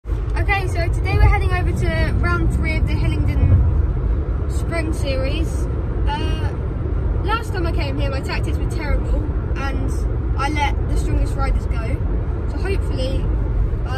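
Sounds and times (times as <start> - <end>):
car road and engine noise: 0.0 - 13.9.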